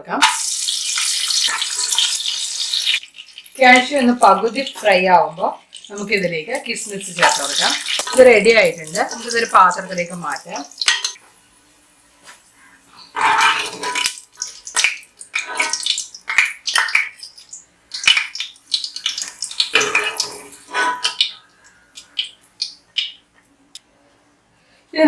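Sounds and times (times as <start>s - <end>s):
metal spoon scraping a pot: 13.0s - 14.1s, 15.4s - 15.9s, 19.8s - 21.4s.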